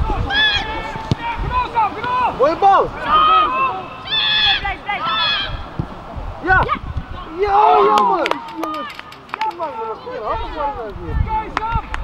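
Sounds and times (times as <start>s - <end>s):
people shouting in high voices: 0.0s - 5.7s, 6.4s - 9.0s.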